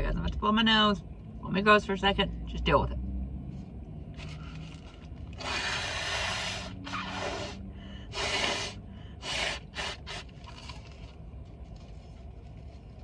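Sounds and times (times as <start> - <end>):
person blowing nose: 5.4 - 10.3.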